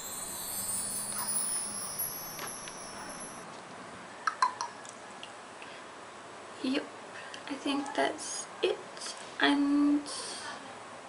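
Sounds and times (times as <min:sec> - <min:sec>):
high chime-like ringing: 0:00.0 - 0:03.4.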